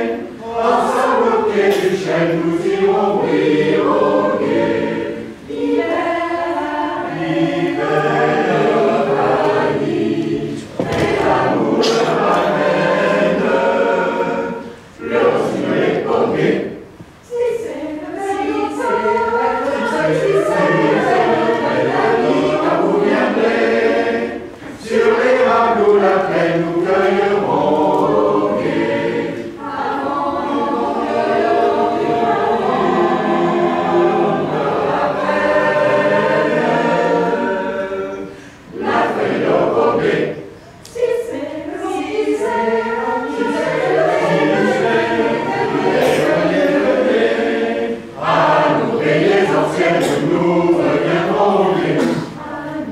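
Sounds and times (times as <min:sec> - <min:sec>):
mixed choir singing a cappella: 0:00.0 - 0:52.9.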